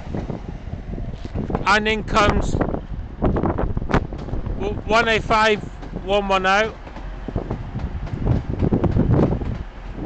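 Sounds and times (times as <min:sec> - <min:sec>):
diesel train rumbling: 0:00.0 - 0:10.0
wind buffeting microphone: 0:00.0 - 0:10.0.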